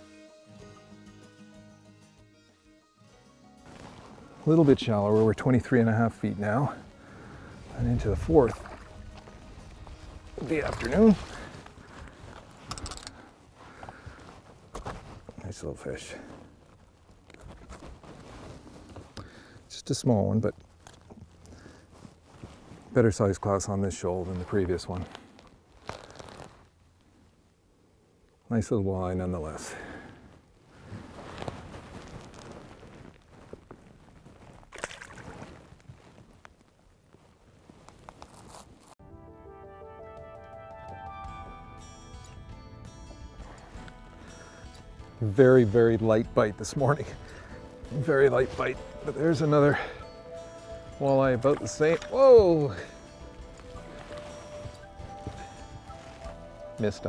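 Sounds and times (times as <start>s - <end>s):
background music: 0.0s - 11.7s, 39.0s - 57.0s
water splashing: 8.1s - 9.4s, 34.7s - 35.5s
rattling clicks of landing net: 12.6s - 13.2s.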